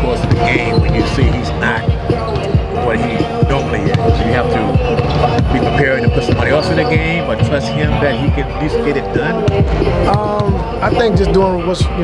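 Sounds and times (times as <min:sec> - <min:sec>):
basketballs bouncing: 0:00.0 - 0:08.6, 0:09.3 - 0:12.0.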